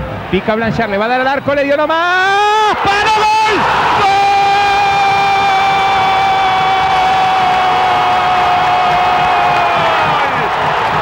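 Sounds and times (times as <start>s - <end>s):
stadium crowd cheering: 0.0s - 11.0s
commentator shouting goal cry: 0.6s - 7.4s.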